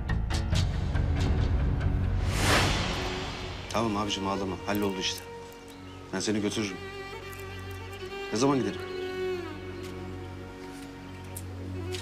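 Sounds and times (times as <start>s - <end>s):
whoosh: 2.0s - 4.0s.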